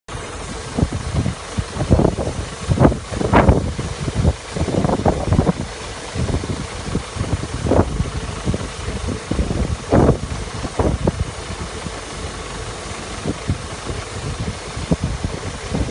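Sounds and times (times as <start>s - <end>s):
combine harvester drone: 0.1s - 15.9s
wind buffeting microphone: 0.1s - 15.9s.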